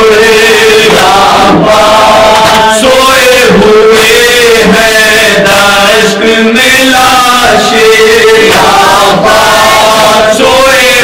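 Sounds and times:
men chanting a lament into a microphone: 0.0s - 11.0s.

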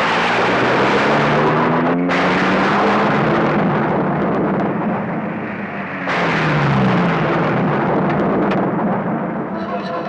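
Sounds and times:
low steady tones: 0.0s - 10.0s.

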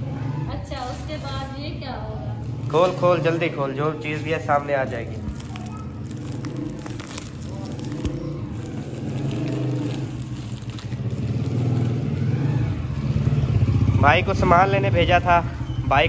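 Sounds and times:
small motorcycle engine running: 0.0s - 16.0s
plastic packaging crinkling: 0.7s - 14.5s.

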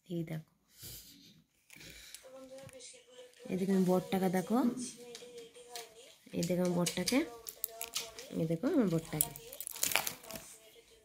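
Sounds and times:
plastic sleeves crinkling: 5.7s - 10.8s.

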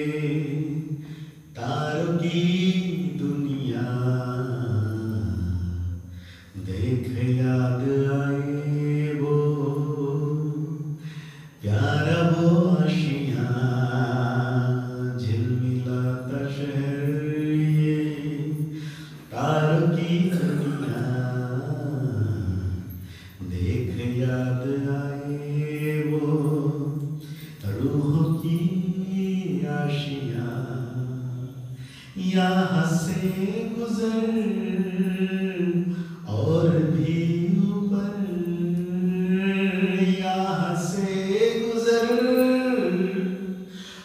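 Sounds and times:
man chanting: 0.0s - 11.0s, 11.6s - 44.0s.

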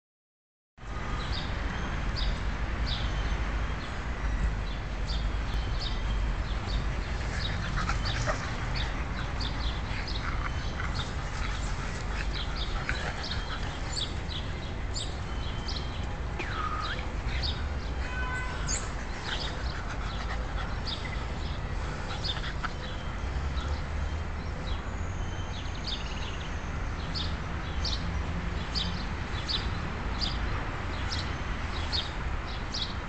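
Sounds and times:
dogs yipping: 7.0s - 14.2s.

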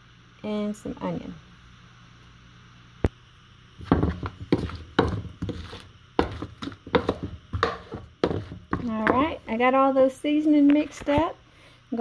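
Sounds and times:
spoon stirring in plastic bowl: 3.8s - 9.6s.

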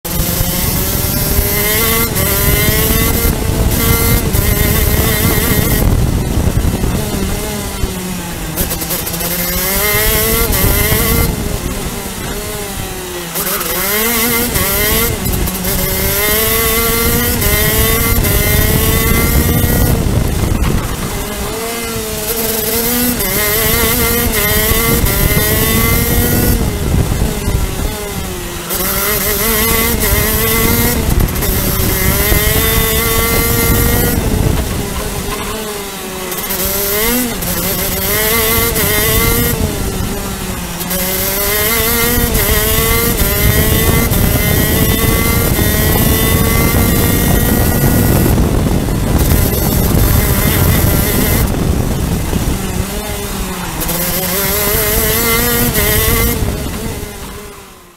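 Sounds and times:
kart engine revving: 0.0s - 57.9s.

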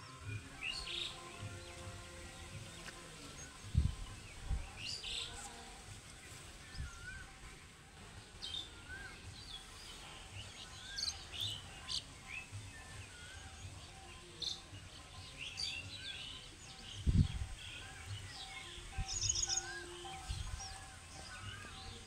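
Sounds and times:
birds chirping and whistling: 0.0s - 5.6s, 6.2s - 22.0s.

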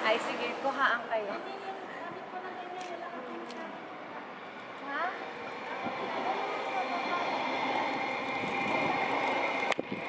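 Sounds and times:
outdoor background noise: 0.0s - 10.0s
indistinct voices: 1.2s - 10.0s.

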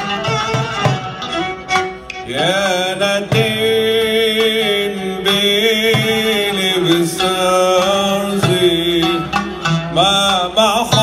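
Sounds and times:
oud: 0.0s - 11.0s.

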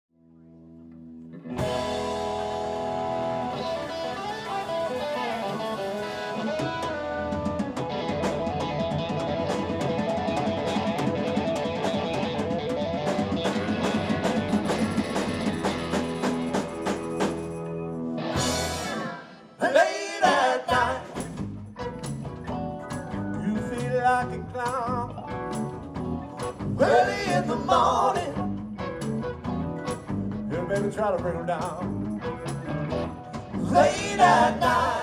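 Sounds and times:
sliding guitar lines: 0.8s - 19.7s
live band playing: 1.3s - 35.0s
steady drum beat: 3.6s - 17.7s, 20.7s - 35.0s.

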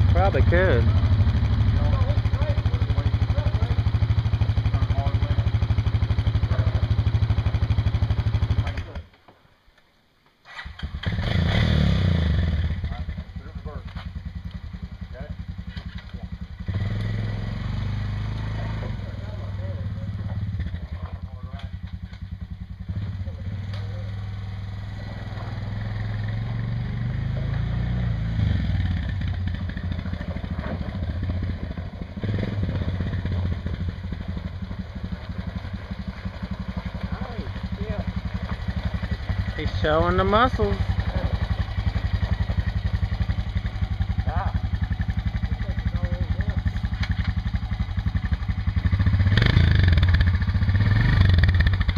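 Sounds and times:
atv engine running and idling: 0.0s - 9.1s, 10.8s - 51.9s.

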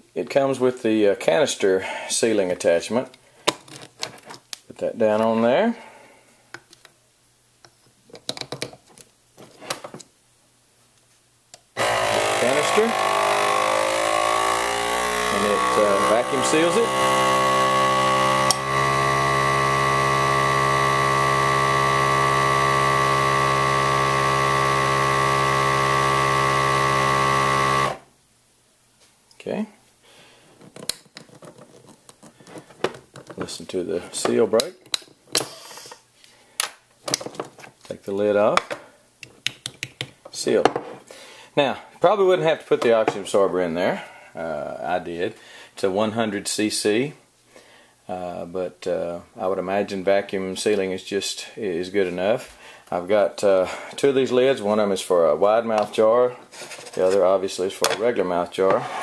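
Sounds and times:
plastic clicks and taps: 38.6s - 40.2s.

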